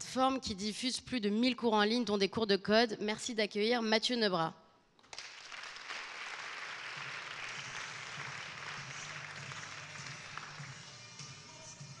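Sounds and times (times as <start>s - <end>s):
audience applauding: 5.0s - 10.9s
background music: 6.5s - 12.0s.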